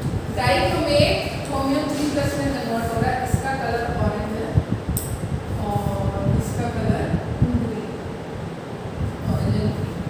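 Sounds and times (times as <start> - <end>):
continuous low rumble: 0.0 - 10.0.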